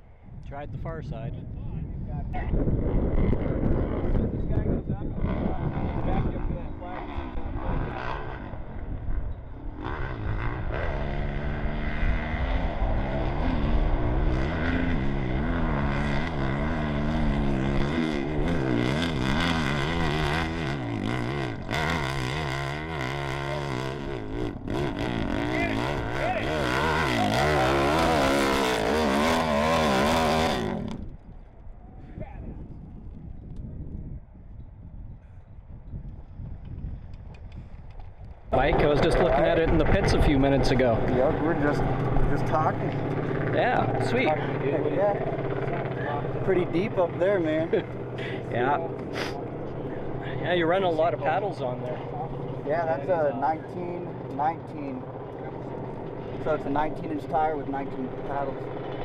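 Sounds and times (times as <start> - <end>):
motorcycle engine at full throttle: 2.4 - 31.4, 36.1 - 59.0.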